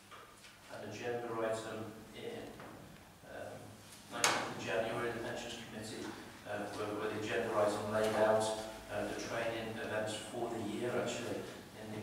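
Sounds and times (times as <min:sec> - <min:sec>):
man speaking into a microphone: 0:00.7 - 0:02.6, 0:03.2 - 0:12.0.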